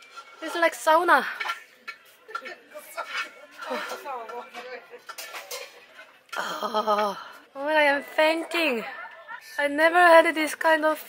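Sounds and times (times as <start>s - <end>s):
murmur of voices: 0.3s - 11.0s.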